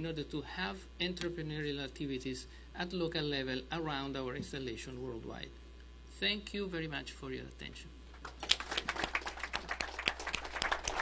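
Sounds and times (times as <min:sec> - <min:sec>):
audience applauding: 0:08.2 - 0:11.0.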